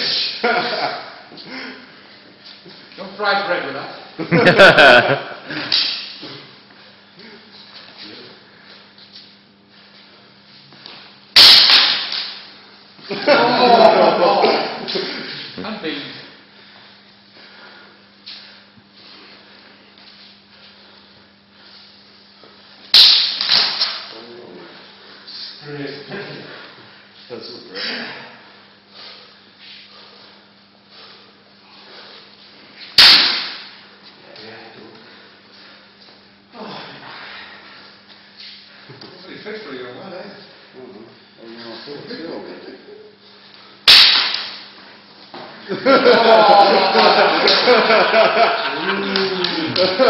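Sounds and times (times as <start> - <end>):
sword blow sharp crack: 11.4 - 12.4, 23.0 - 24.1, 33.0 - 33.8, 43.9 - 44.6.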